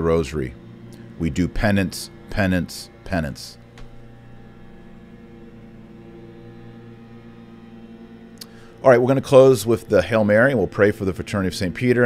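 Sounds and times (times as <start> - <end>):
leaf blowers droning: 0.0 - 12.0.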